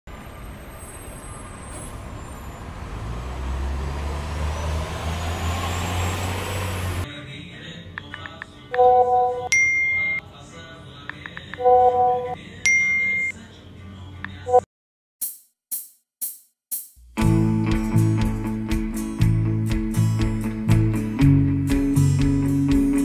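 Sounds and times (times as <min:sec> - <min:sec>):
chiming message alert: 0:08.8 - 0:10.2, 0:11.6 - 0:13.3.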